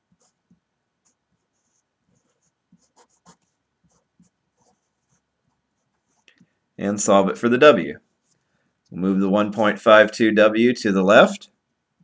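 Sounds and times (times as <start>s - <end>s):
felt-tip marker scratching on paper: 1.0s - 5.3s.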